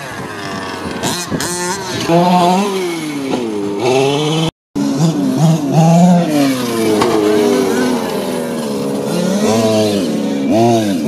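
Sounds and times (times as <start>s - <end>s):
two-stroke engine revving: 0.0s - 11.0s.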